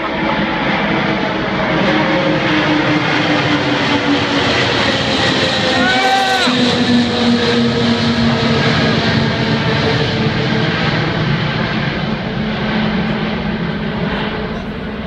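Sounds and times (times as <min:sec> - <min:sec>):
jet engines roaring overhead: 0:00.0 - 0:15.0.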